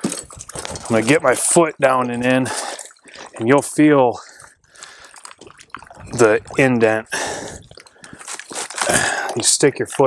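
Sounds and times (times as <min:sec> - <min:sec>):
water sloshing around legs: 0:00.0 - 0:08.9.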